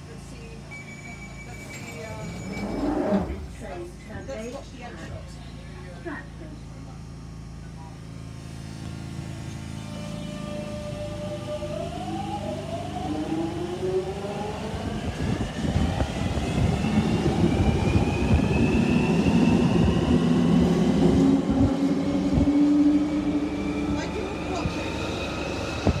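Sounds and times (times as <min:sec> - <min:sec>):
train hum inside carriage: 0:00.0 - 0:26.0.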